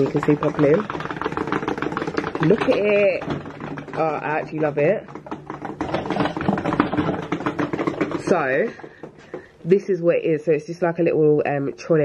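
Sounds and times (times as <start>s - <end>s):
rapid rattling clicks and knocks: 0.0s - 9.6s.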